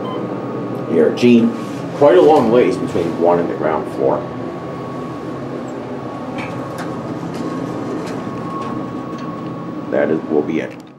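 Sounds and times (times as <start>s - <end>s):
mechanical hum: 0.0s - 10.9s.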